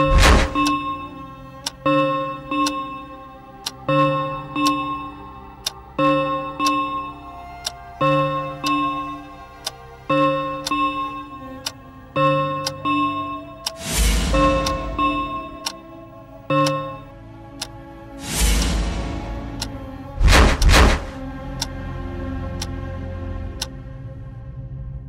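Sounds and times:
clock ticking: 0:00.0 - 0:21.8, 0:22.6 - 0:22.8
suspense background music: 0:00.0 - 0:25.0.

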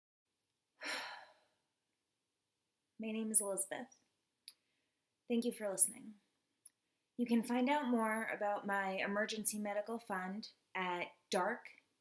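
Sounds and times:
woman sighing: 0:00.8 - 0:01.5.

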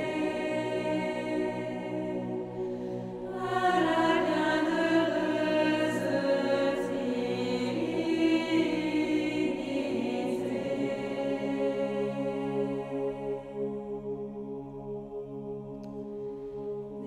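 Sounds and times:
choir singing a slow hymn: 0:00.0 - 0:17.0.

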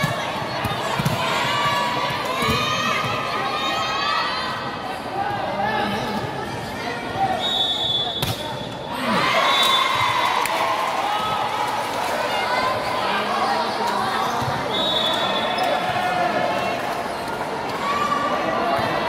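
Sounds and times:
referee's whistle: 0:07.3 - 0:08.4, 0:09.4 - 0:10.0, 0:14.7 - 0:15.7
crowd cheering and shouting: 0:08.9 - 0:16.8.

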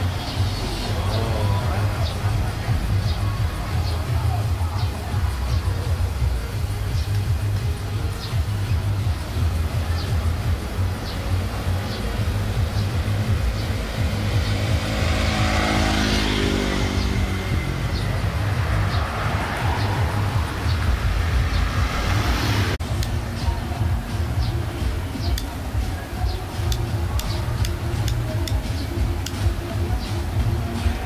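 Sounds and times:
music with pulsing bass beat: 0:00.0 - 0:31.0
scooters and cars passing: 0:00.0 - 0:31.0.

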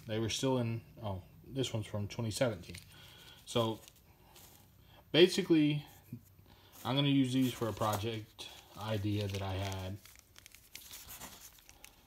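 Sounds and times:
plastic packaging crinkling: 0:02.4 - 0:04.7, 0:06.7 - 0:12.0.

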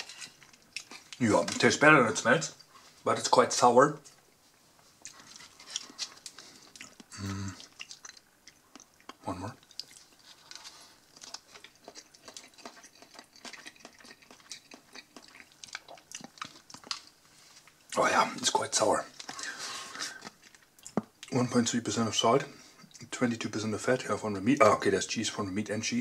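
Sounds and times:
person chewing wetly: 0:00.0 - 0:01.2, 0:05.0 - 0:18.0
person humming: 0:07.1 - 0:07.6.

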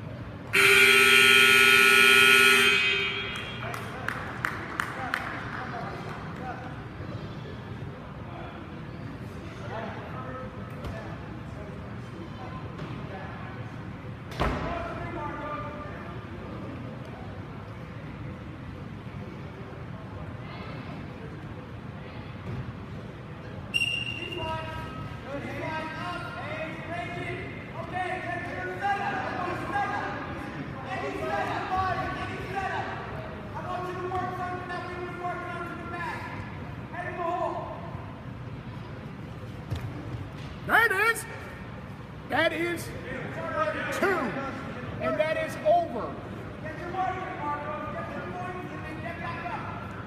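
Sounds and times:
low murmur of gym: 0:00.0 - 0:50.0
referee whistle blast: 0:00.6 - 0:03.7
scoreboard buzzer: 0:00.6 - 0:03.7.

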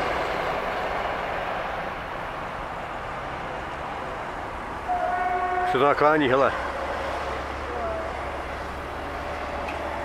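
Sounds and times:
road noise: 0:00.0 - 0:10.0
diesel engine running: 0:06.4 - 0:10.0.

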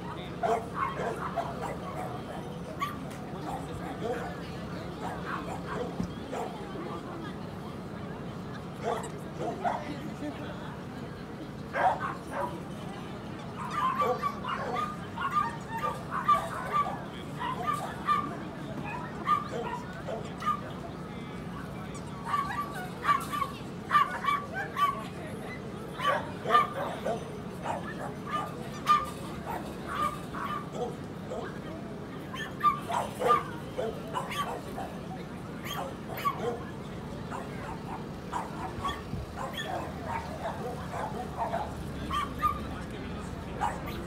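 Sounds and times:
small dog yapping: 0:32.3 - 0:33.5, 0:34.2 - 0:34.6, 0:35.6 - 0:36.6, 0:37.3 - 0:42.6.

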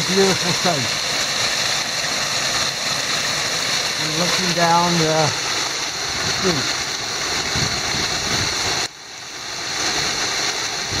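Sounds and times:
waterfall rushing over rocks: 0:00.0 - 0:11.0.

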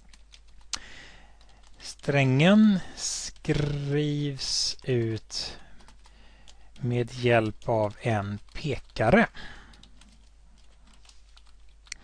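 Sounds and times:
computer keyboard clicks: 0:09.7 - 0:12.0.

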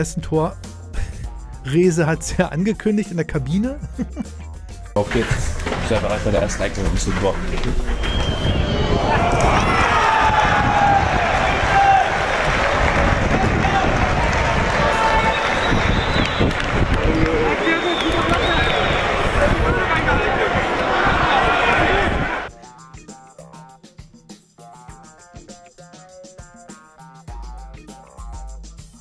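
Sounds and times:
wind buffeting microphone: 0:07.8 - 0:17.6
players shouting and cheering: 0:08.1 - 0:22.5.

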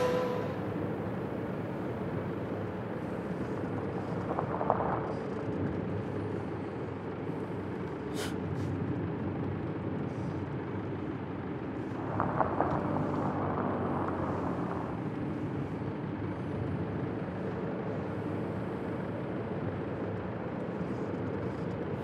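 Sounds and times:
car road and engine noise: 0:00.0 - 0:22.0.

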